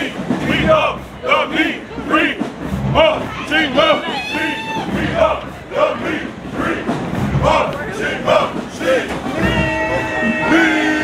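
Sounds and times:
low thuds: 0.0 - 10.7
group chanting and shouting: 0.0 - 11.0.

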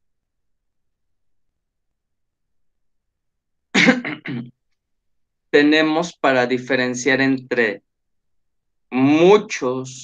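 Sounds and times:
man coughing: 3.7 - 4.5.

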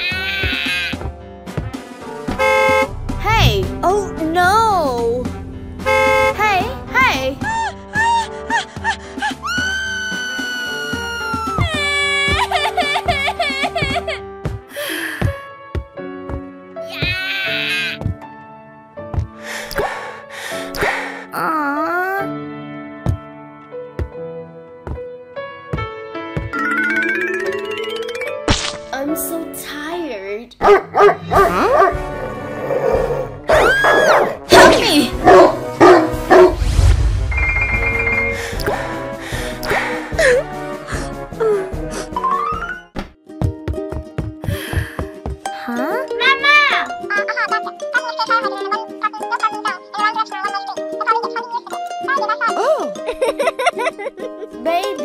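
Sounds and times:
background music: 0.0 - 55.0
cartoon crying wail: 9.2 - 13.9, 16.9 - 18.0
person whimpering and moaning: 21.3 - 22.3.

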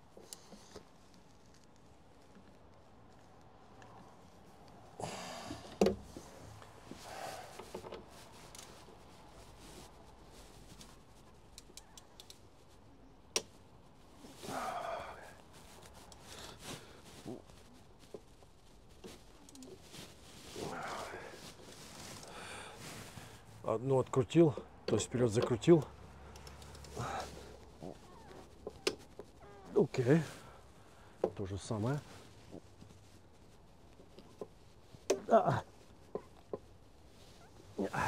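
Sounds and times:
breathy sounds: 5.0 - 7.8, 14.2 - 17.5, 19.3 - 23.6, 25.9 - 28.5, 37.7 - 38.0.

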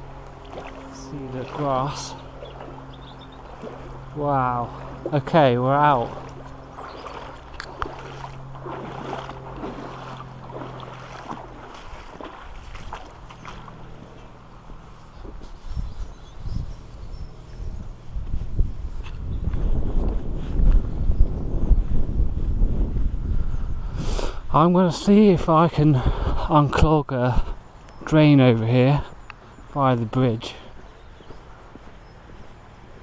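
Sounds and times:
wind rumbling on microphone: 0.0 - 33.0.

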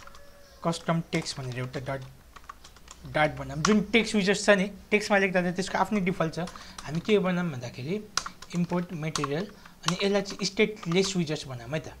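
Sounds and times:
keyboard keys clicking: 0.0 - 4.1, 8.1 - 11.4
person talking: 0.6 - 2.2, 3.0 - 12.0.

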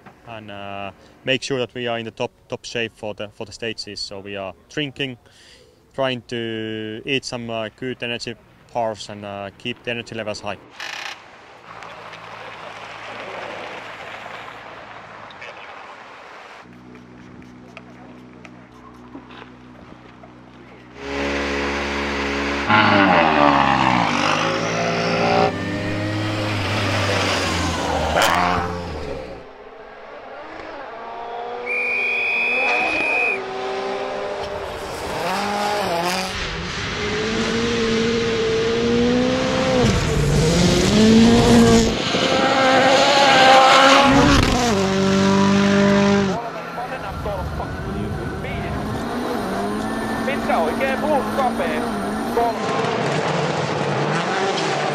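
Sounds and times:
rally car engine revving: 16.7 - 54.9.

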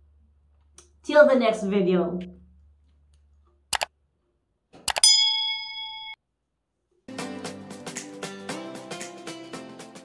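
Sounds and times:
bright bell ding: 5.0 - 6.2.

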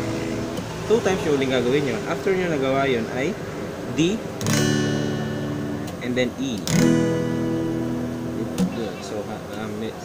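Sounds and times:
acoustic guitar chord strummed: 0.0 - 0.8, 4.1 - 10.0.

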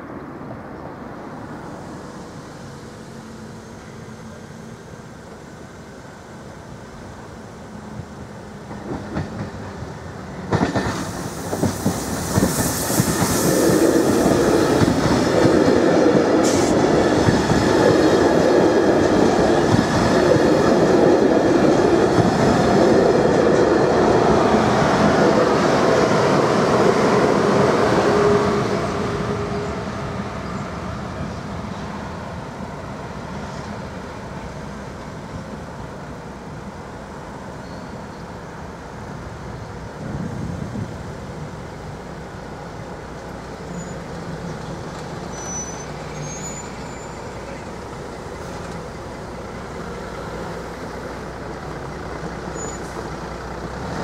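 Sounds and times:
train wheels clattering: 8.6 - 24.1.

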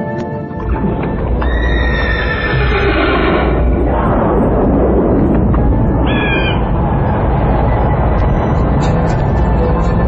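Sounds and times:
galloping hooves rumble: 0.6 - 10.0
horse neighing: 1.4 - 3.6.

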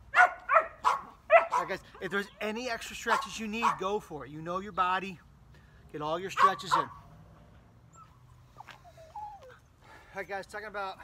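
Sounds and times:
dog whining: 7.9 - 9.7.

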